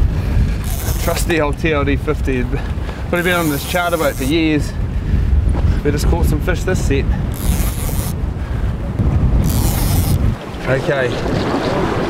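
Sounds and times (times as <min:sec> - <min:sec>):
sea: 0:00.0 - 0:12.0
strong wind buffeting microphone: 0:00.0 - 0:12.0.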